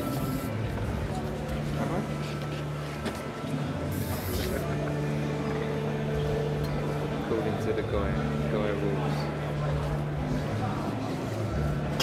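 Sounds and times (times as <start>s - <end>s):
murmur of busy hall: 0.0s - 12.0s.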